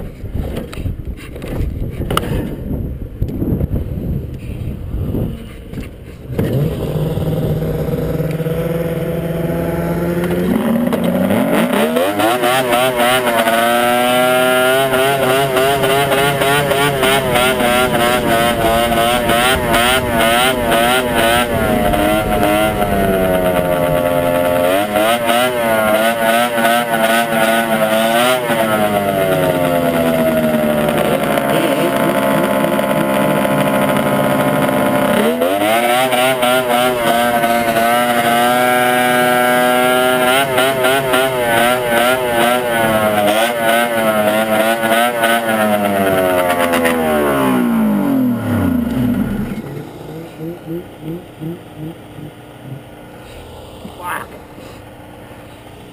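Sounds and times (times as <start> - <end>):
snowmobile engine revving: 6.3 - 55.9.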